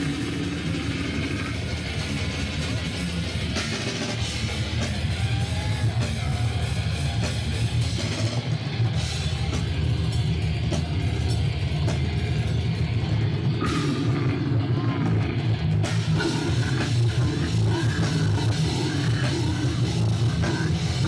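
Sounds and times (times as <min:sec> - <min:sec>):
distorted guitars and bass: 0:00.0 - 0:21.0
fast drum kit: 0:00.0 - 0:21.0.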